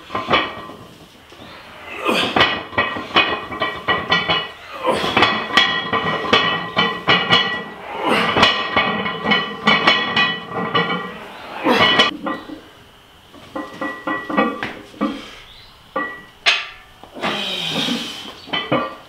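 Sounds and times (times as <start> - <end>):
barbell plates clinking: 0.0 - 12.7, 13.5 - 15.3, 15.9 - 17.0, 18.4 - 19.0
barbell clank: 2.2 - 12.6, 16.0 - 16.9.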